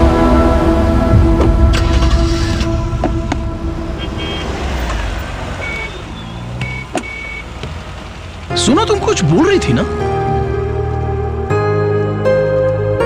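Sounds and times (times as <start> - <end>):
car engine rumbling: 0.0 - 12.5
street traffic: 0.0 - 13.0.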